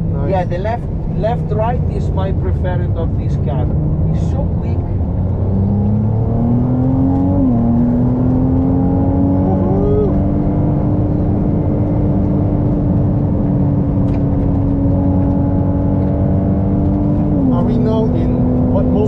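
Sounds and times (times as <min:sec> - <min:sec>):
sports car accelerating hard: 0:01.9 - 0:19.0.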